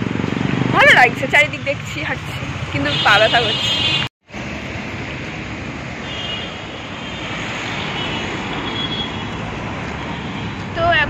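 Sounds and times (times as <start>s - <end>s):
street traffic rumble and hiss: 0.0s - 11.0s.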